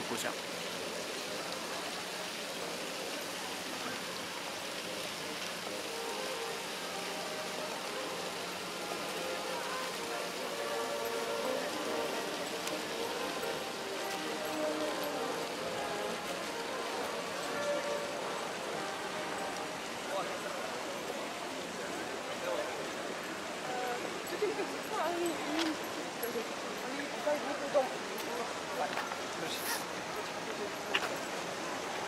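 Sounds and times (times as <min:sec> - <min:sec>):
faint music: 0:00.0 - 0:32.0
faint voices: 0:00.0 - 0:32.0
fountain water rushing: 0:00.0 - 0:32.0.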